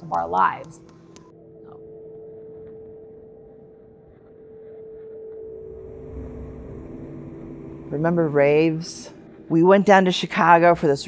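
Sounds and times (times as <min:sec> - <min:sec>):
soft music of sustained tones: 0:00.0 - 0:11.0
low rumble: 0:01.8 - 0:11.0.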